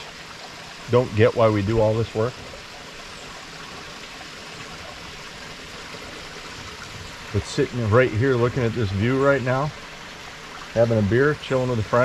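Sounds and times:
stream running: 0.0s - 12.0s.

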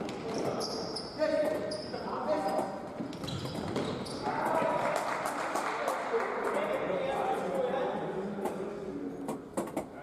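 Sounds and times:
shoes squeaking on hall floor: 0.0s - 4.7s.

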